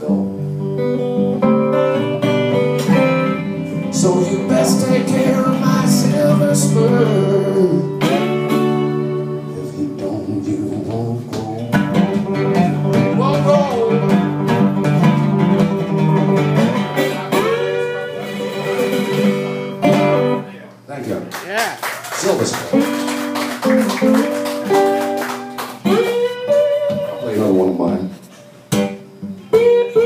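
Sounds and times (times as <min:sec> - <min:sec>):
acoustic guitar blues: 0:00.0 - 0:20.6, 0:22.2 - 0:30.0.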